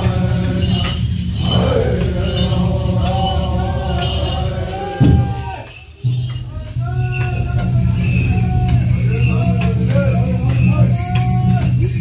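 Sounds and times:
higher gliding tones: 0.0s - 10.6s
low steady chant: 0.0s - 12.0s.

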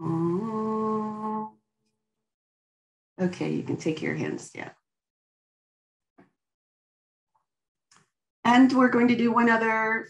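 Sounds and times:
voice holding long note: 0.0s - 1.5s.

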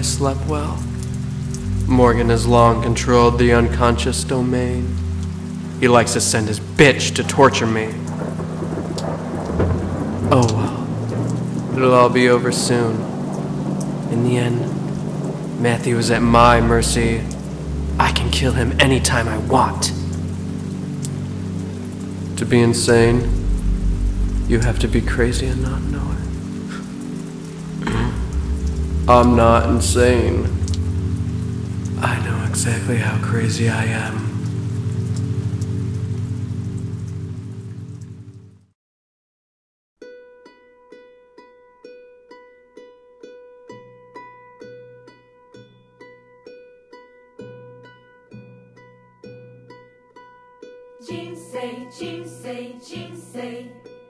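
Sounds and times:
low sustained drone: 0.0s - 10.1s, 15.9s - 38.4s
low even hum: 0.0s - 11.7s, 15.6s - 38.6s
thunder rumbling: 0.0s - 38.6s
rain hissing: 0.0s - 38.7s, 51.0s - 53.7s.

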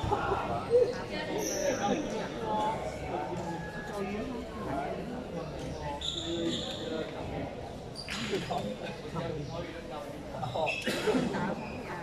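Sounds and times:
echoing chatter of voices: 0.0s - 12.0s.

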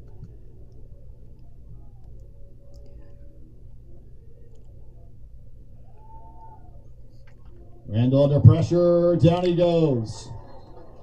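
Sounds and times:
low stadium rumble: 0.0s - 11.0s.

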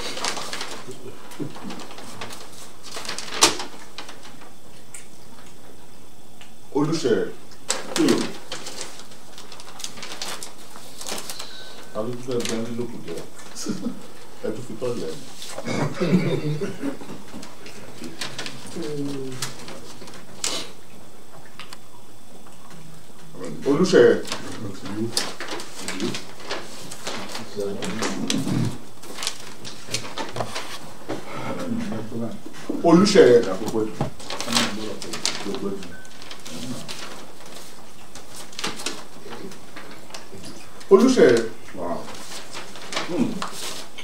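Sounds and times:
paper rustling and crinkling: 0.0s - 5.7s, 7.0s - 20.9s, 23.2s - 44.0s.

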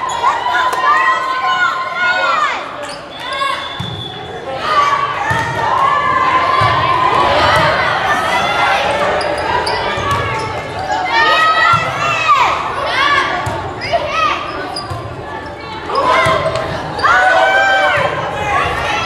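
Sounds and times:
voices echoing in a hall: 0.0s - 19.0s
sneakers squeaking on gym floor: 2.8s - 4.4s, 9.0s - 11.0s, 13.4s - 17.3s.

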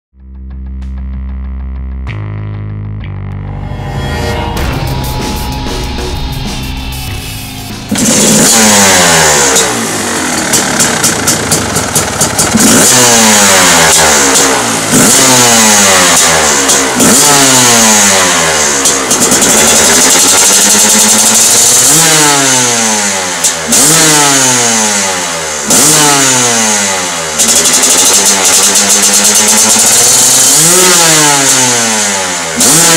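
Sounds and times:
two-stroke engine revving: 7.8s - 32.9s.

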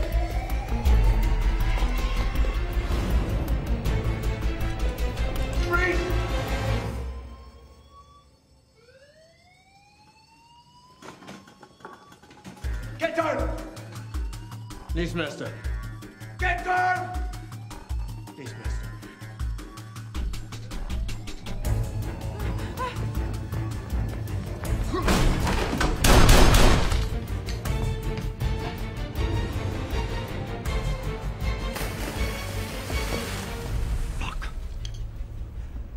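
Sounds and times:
action film score with driving beat: 0.0s - 8.7s, 11.0s - 35.9s.

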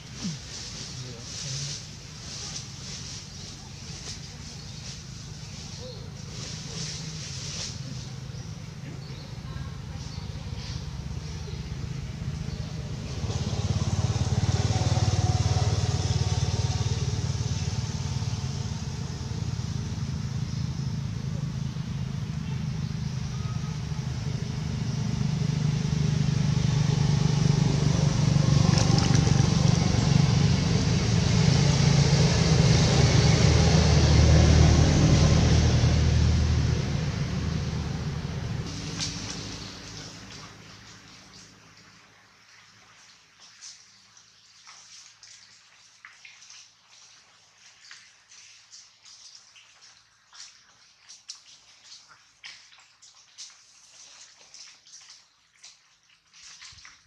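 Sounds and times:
vehicle engine rumbling: 0.0s - 42.0s.

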